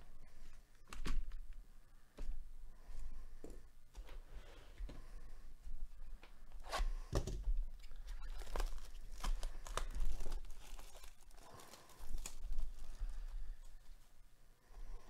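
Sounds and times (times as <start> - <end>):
cardboard and wrapping ripping: 8.1 - 13.2.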